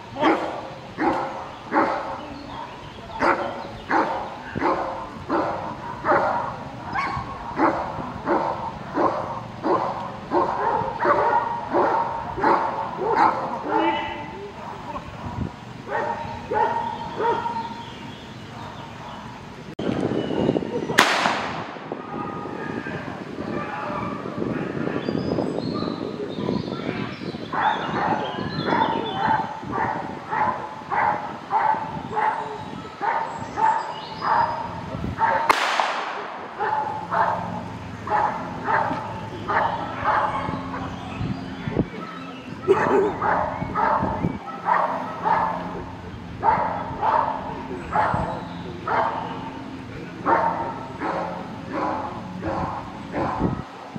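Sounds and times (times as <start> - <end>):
dog barking rhythmically: 0.2 - 14.0, 27.6 - 35.5, 36.5 - 41.0, 41.9 - 49.4, 50.2 - 53.8
sharp crack: 21.0 - 21.9, 35.4 - 36.6.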